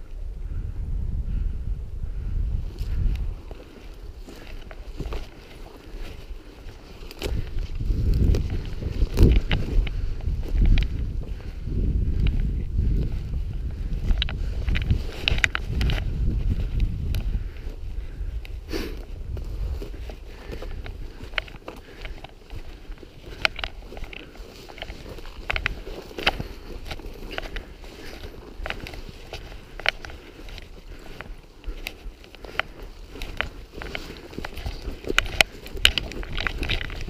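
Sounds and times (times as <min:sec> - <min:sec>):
wind rumble on microphone: 0:00.0 - 0:37.0
footsteps through undergrowth: 0:02.2 - 0:37.0
twigs snapping and rustling: 0:02.7 - 0:37.0.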